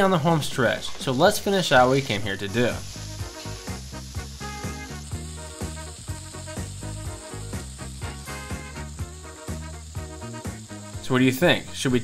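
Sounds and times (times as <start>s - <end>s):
burger patty sizzling in skillet: 0.0s - 12.0s
background music with beat: 2.8s - 11.7s.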